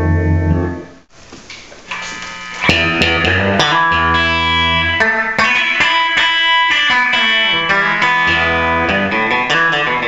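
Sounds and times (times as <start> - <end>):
electric guitar notes picked: 0.0 - 1.1, 1.8 - 10.0
electric guitar chord: 1.9 - 10.0.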